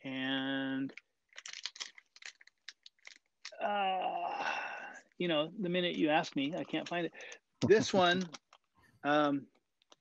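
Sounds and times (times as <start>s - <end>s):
rummaging through small objects: 0.9s - 3.6s.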